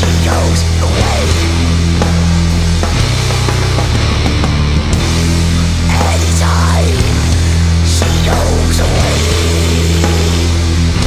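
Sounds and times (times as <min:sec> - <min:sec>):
distorted guitar and bass chords: 0:00.0 - 0:11.0.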